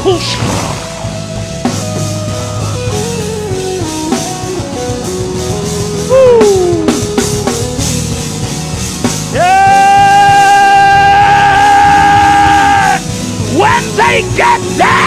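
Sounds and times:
gospel band music: 0.0 - 14.9
drum kit: 0.0 - 15.0
loud note sliding down: 0.2 - 2.9.

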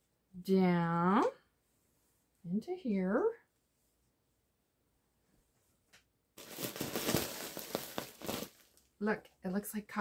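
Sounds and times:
plastic bag crinkling: 6.4 - 8.9.

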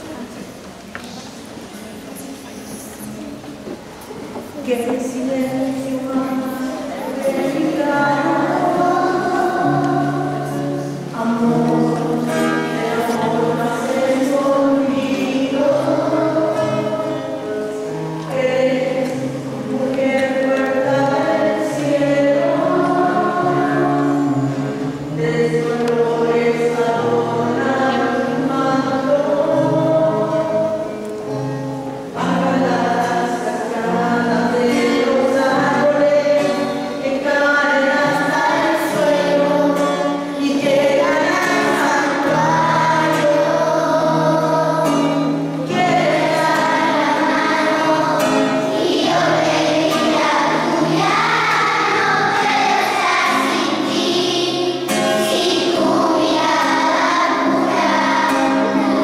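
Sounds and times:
group singing a hymn: 4.7 - 31.1, 32.2 - 59.0.

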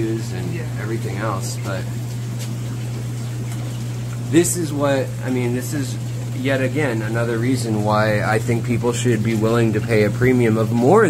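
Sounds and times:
air bubbling through tanks: 0.0 - 11.0
low equipment hum: 0.0 - 11.0.

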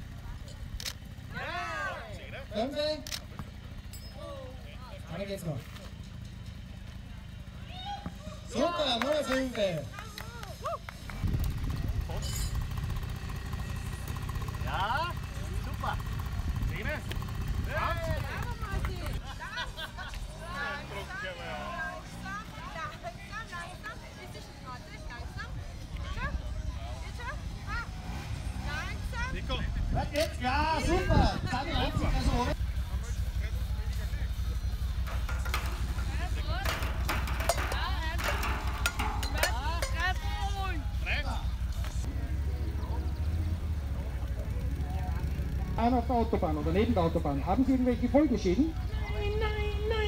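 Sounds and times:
voices talking: 0.0 - 50.0
balls knocking tin cans: 34.9 - 40.5.

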